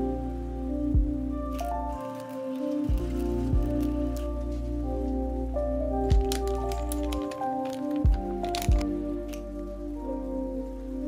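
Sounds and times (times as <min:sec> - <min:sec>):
soft background music: 0:00.0 - 0:11.0
plastic pouch crinkling: 0:01.5 - 0:04.8, 0:06.0 - 0:09.5.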